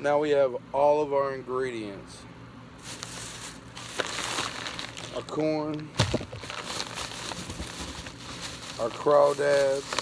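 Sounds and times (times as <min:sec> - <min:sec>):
plastic bag crinkling: 0:02.8 - 0:10.0.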